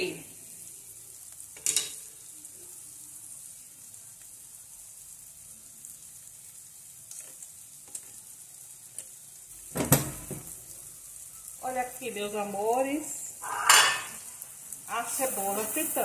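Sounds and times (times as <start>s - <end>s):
onion rings sizzling in fat: 0.0s - 16.0s.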